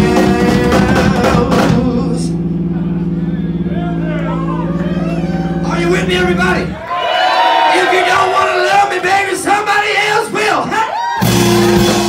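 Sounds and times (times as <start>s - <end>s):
electric guitars and bass chord: 0.0s - 6.9s, 11.2s - 12.0s
crowd voices: 2.3s - 12.0s.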